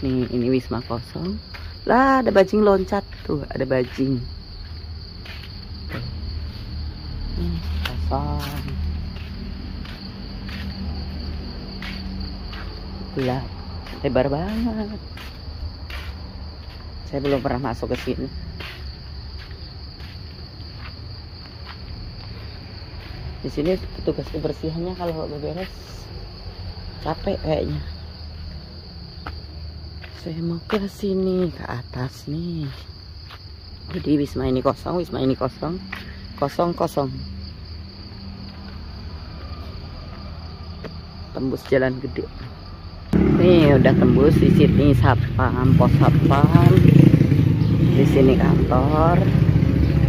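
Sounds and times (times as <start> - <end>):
insects trilling: 0.0 - 50.0.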